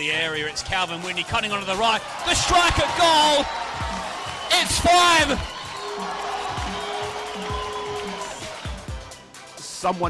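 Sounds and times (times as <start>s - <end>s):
electronic beat music: 0.0s - 10.0s.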